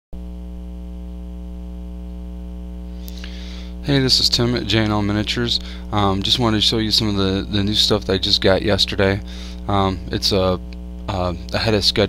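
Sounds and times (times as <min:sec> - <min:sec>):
electrical mains hum: 0:00.2 - 0:12.0.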